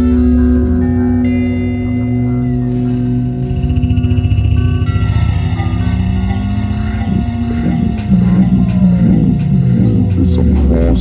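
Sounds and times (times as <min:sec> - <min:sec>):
fast low pulsing synth tones: 0:00.0 - 0:11.0.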